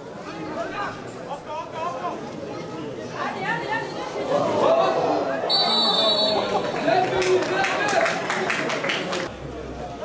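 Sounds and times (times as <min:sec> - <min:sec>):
people calling out and talking: 0:00.0 - 0:10.0
referee's whistle blast: 0:05.5 - 0:06.5.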